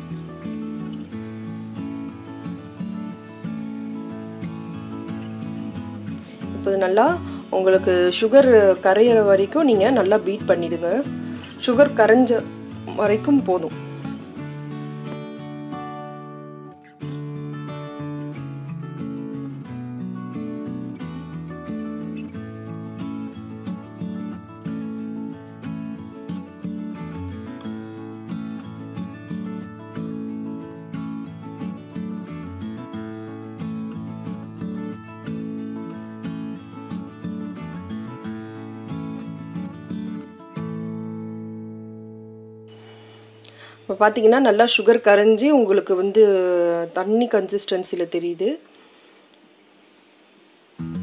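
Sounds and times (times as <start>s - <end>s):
instrumental background music: 0.0s - 46.5s, 50.8s - 51.0s.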